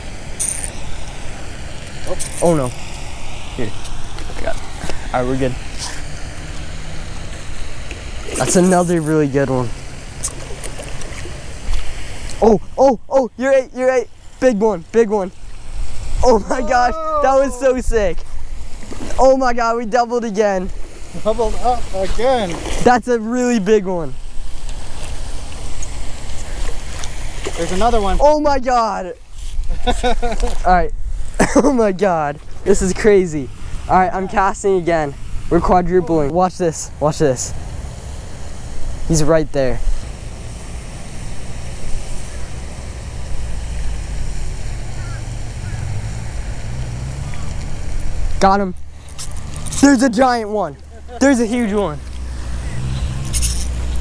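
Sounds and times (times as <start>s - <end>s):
spinning reel being cranked: 0.4s - 0.7s
short high rattles: 0.4s - 0.8s, 2.1s - 2.8s, 52.8s - 54.0s
fish splashing at water surface: 24.6s - 27.8s.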